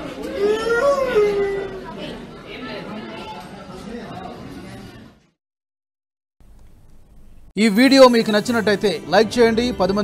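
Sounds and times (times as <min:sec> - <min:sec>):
people chattering indoors: 0:00.0 - 0:05.4.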